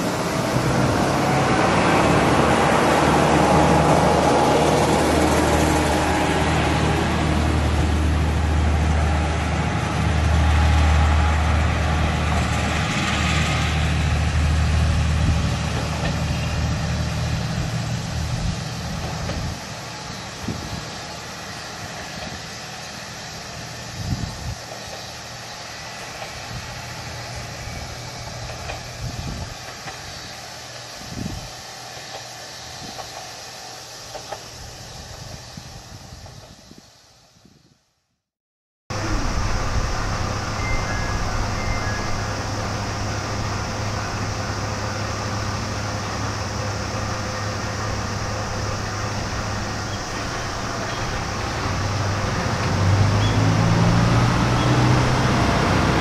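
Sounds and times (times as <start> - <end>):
train wheel noise: 0.0 - 37.4, 38.9 - 56.0
diesel railcar engine drone: 0.0 - 37.5, 38.9 - 56.0.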